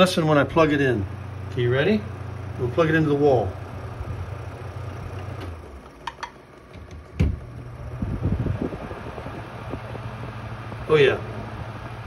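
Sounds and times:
desk fan humming: 0:00.0 - 0:12.0
plug thump into outlet: 0:06.1 - 0:07.4.

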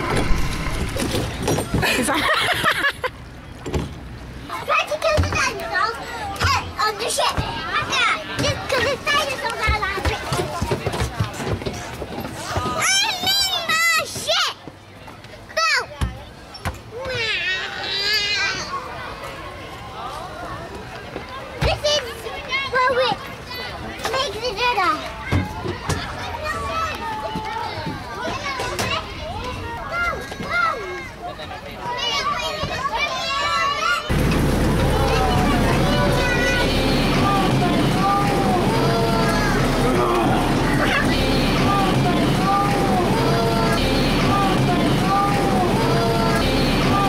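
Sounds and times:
young children chattering and squealing: 0:04.4 - 0:10.9, 0:15.4 - 0:19.5, 0:21.4 - 0:47.0.

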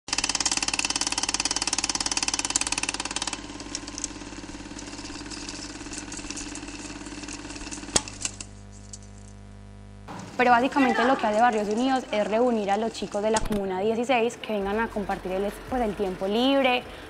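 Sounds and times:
film projector clattering: 0:00.1 - 0:09.0, 0:10.1 - 0:16.8.

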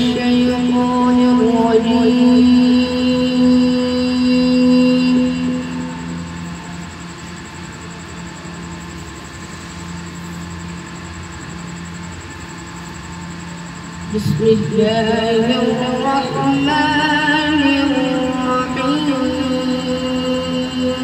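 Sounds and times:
person reciting through microphone: 0:00.0 - 0:06.6, 0:14.0 - 0:21.0
steady low hum: 0:00.0 - 0:21.0.

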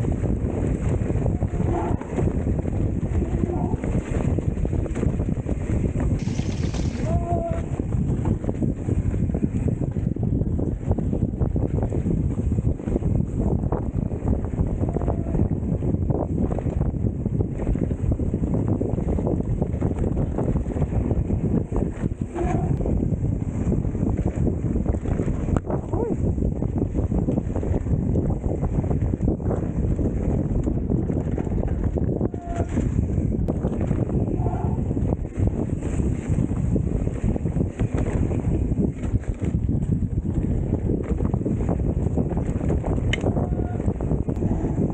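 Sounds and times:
wind buffeting microphone: 0:00.0 - 0:44.9
bike knocks and rattles: 0:04.1 - 0:10.2
tyres rolling over dirt: 0:06.2 - 0:07.2.

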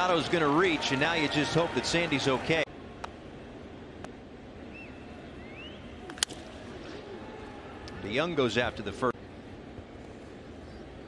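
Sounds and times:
faint whistle: 0:04.7 - 0:06.1.

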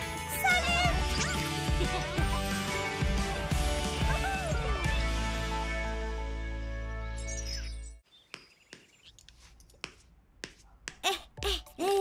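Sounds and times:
cartoon character voice: 0:11.0 - 0:12.0.

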